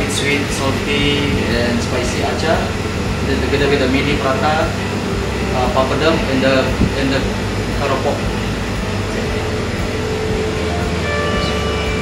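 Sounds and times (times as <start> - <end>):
air-conditioning hum: 0.0 - 12.0
bell-like high chord: 0.0 - 12.0.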